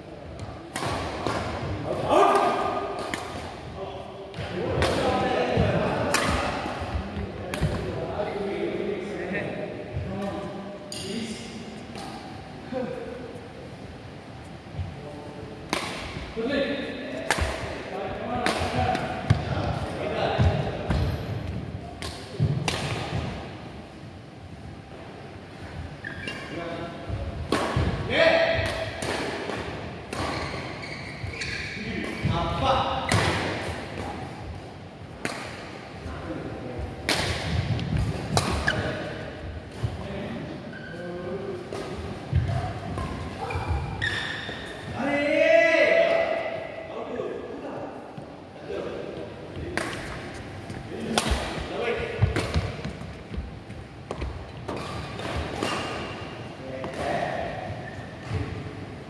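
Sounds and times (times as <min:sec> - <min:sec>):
racket hitting shuttlecock: 0:06.1 - 0:06.7, 0:15.7 - 0:16.2, 0:17.2 - 0:17.7, 0:22.0 - 0:23.3, 0:37.0 - 0:38.8, 0:51.1 - 0:53.1.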